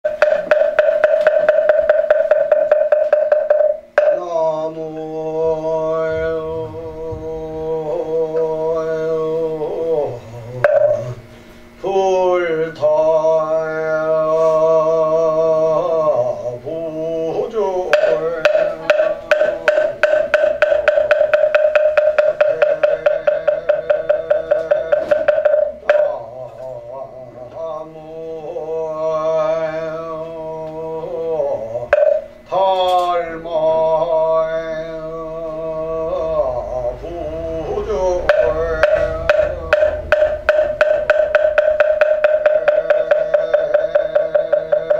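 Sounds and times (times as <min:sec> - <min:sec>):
wooden fish struck in a roll: 0:00.2 - 0:04.2, 0:17.9 - 0:26.2, 0:32.0 - 0:32.3, 0:38.2 - 0:44.9
man chanting: 0:04.0 - 0:41.3, 0:42.3 - 0:44.9.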